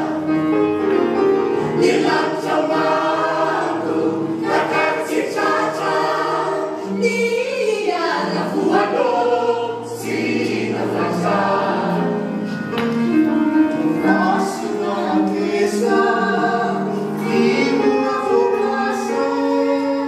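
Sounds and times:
mixed choir singing: 0:00.0 - 0:20.0.

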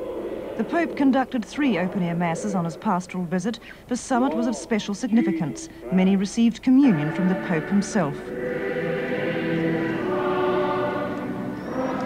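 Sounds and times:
choir singing sustained notes: 0:06.8 - 0:12.0.

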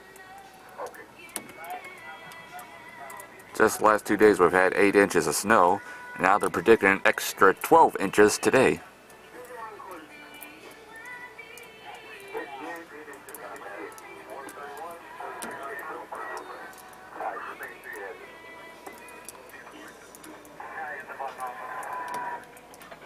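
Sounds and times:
background music: 0:00.0 - 0:23.0
person talking: 0:03.6 - 0:08.8.

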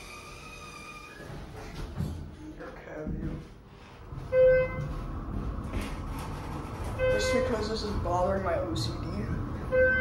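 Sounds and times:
elevator car rumbling: 0:04.0 - 0:10.0.

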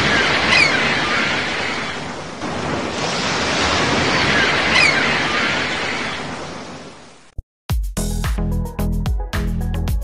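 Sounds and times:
ocean surf rushing: 0:00.0 - 0:07.3.

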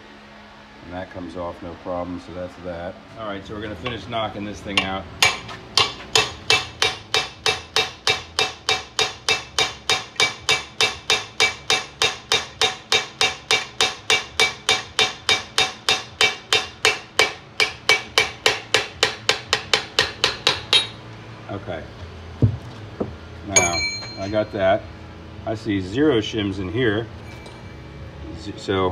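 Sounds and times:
hammer striking steel punch: 0:04.7 - 0:21.0, 0:23.6 - 0:24.5.

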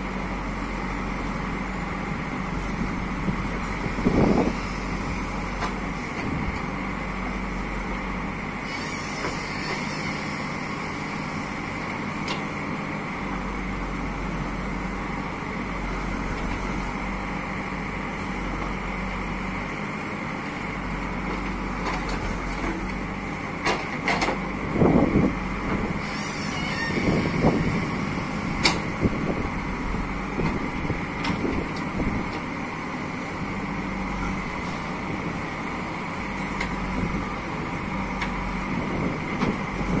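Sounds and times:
diesel engine running under load: 0:00.0 - 0:40.0.

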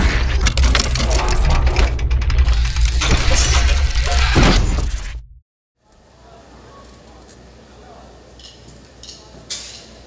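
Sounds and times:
glitchy clicks and crackles: 0:00.0 - 0:05.2.

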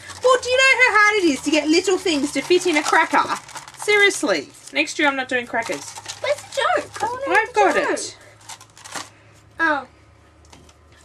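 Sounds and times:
woman speaking: 0:00.0 - 0:08.2, 0:09.6 - 0:09.9.

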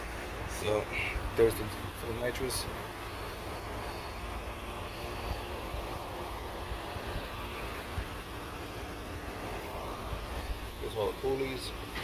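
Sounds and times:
hiss: 0:00.0 - 0:12.0
steady low rumble: 0:00.0 - 0:12.0.

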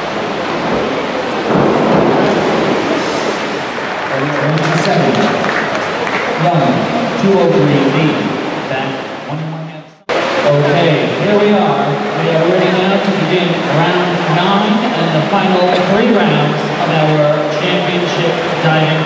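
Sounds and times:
people talking in echoing hall: 0:00.0 - 0:19.0.

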